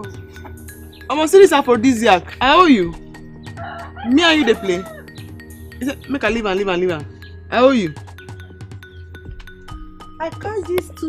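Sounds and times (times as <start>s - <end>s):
soft background music: 0.0s - 11.0s
rooster crowing: 3.5s - 5.2s.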